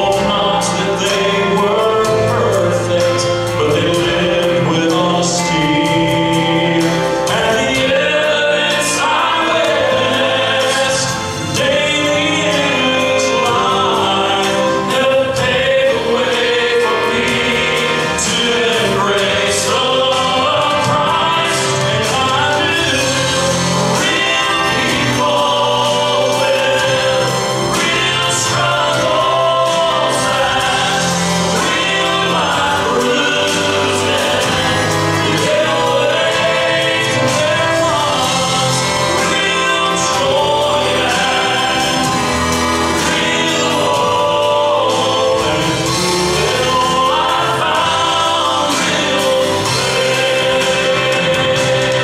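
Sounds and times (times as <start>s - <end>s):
choir backing vocals: 0.0s - 52.0s
man singing gospel: 0.0s - 52.0s
musical accompaniment: 0.0s - 52.0s.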